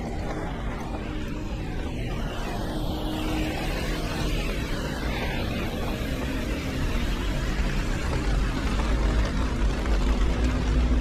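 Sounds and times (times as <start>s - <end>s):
low rumble: 0.0s - 11.0s
traffic on wet roads: 0.0s - 11.0s.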